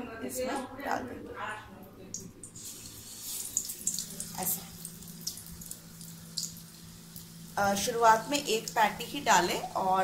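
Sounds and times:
deep-frying hissing sizzle: 0:02.6 - 0:10.0.

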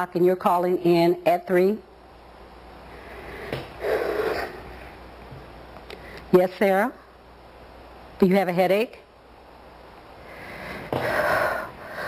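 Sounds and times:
low steady room hum: 0:00.0 - 0:12.0.

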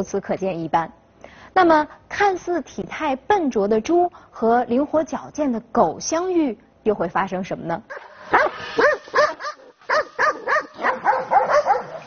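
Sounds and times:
dogs barking: 0:07.9 - 0:12.0.

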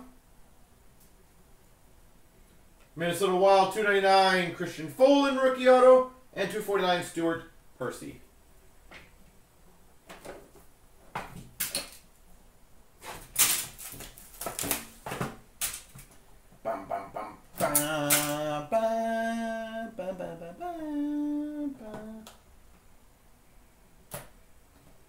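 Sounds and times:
wrappers and boxes crackling: 0:13.0 - 0:16.2
person humming: 0:16.6 - 0:22.4.

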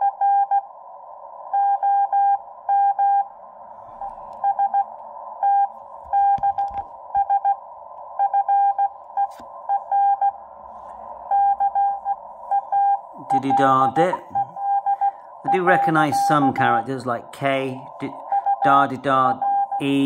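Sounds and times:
receiver hiss: 0:00.0 - 0:20.0
morse code tone: 0:11.2 - 0:16.8, 0:18.0 - 0:20.0.

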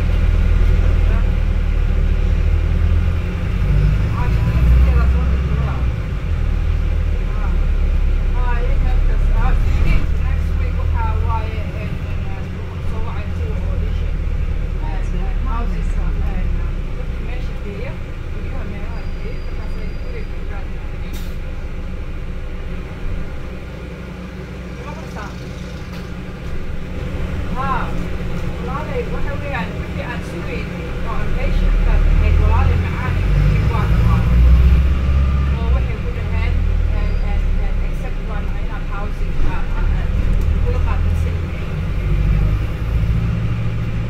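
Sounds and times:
bus drivetrain and road rumble: 0:00.0 - 0:44.0
passengers murmuring: 0:24.7 - 0:34.6.

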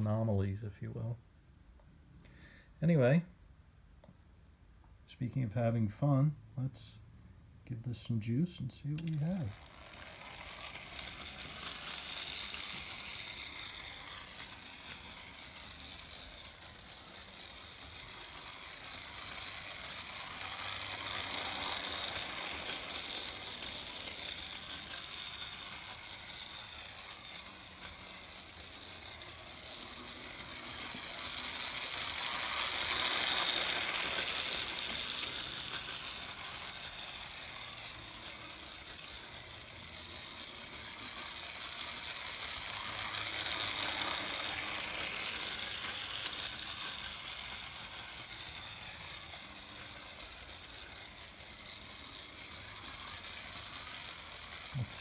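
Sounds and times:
model train motor whirring: 0:00.0 - 0:00.3, 0:07.9 - 0:55.0.

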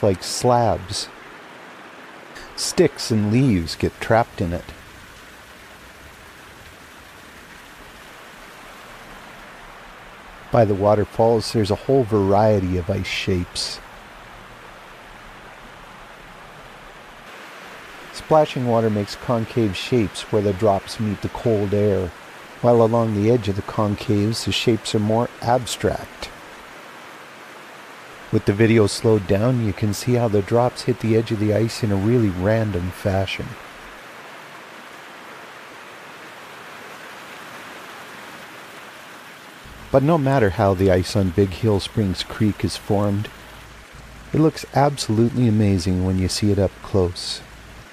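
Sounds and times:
creek water rushing: 0:00.0 - 0:47.9.

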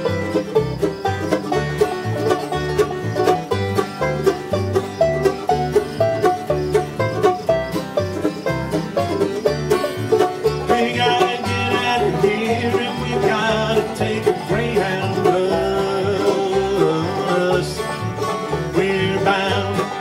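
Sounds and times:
bluegrass band playing: 0:00.0 - 0:20.0
person singing: 0:10.6 - 0:20.0.

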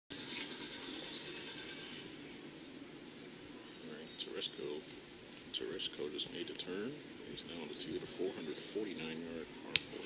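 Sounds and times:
faint outdoor hiss: 0:00.1 - 0:10.0.

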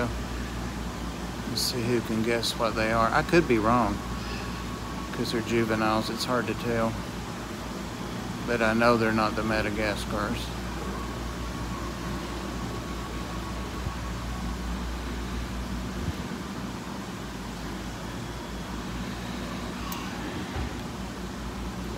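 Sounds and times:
aquarium hum and hiss: 0:00.0 - 0:21.9.

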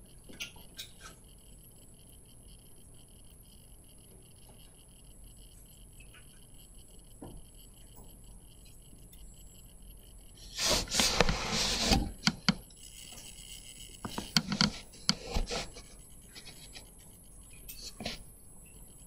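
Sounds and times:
loud rubbing scraping noise: 0:10.4 - 0:12.2.

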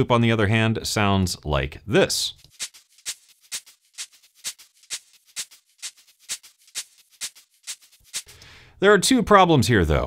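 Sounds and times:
shaker loop: 0:02.4 - 0:08.4.

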